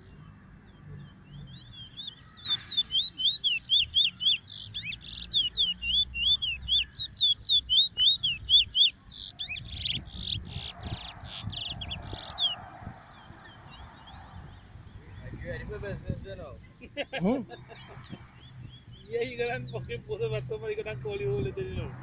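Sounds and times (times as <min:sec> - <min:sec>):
finch singing whistled notes: 0:00.7 - 0:15.7.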